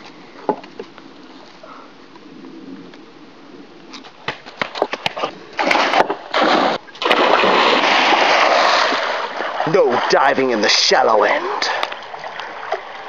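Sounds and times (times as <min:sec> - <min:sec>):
heavy splashing water: 0:05.6 - 0:13.0
person splashing into pool: 0:05.6 - 0:13.0.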